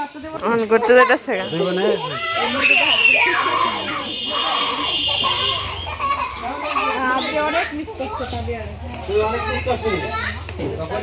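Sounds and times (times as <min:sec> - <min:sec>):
adults talking: 0:00.0 - 0:11.0
children's voices: 0:00.1 - 0:10.7
child shouting: 0:01.0 - 0:07.7.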